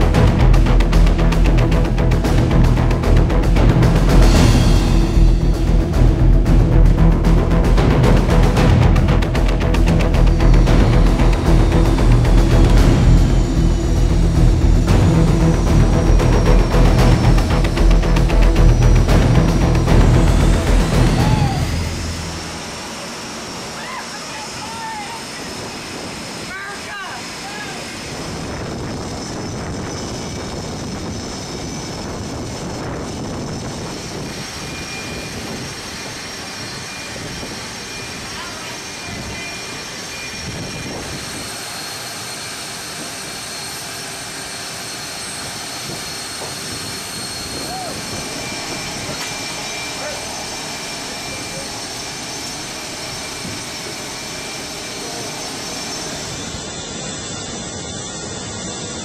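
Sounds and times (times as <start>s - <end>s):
jet engines roaring: 0.0s - 59.0s.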